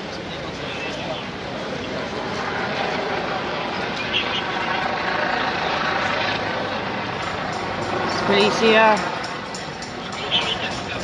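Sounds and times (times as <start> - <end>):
helicopter drone overhead: 0.0 - 11.0
street noise: 0.0 - 11.0.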